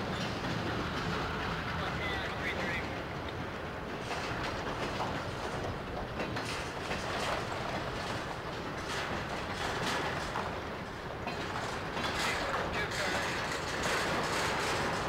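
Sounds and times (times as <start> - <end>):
freight train rumble: 0.0 - 15.0
wheels clanking over rail joints: 0.0 - 15.0.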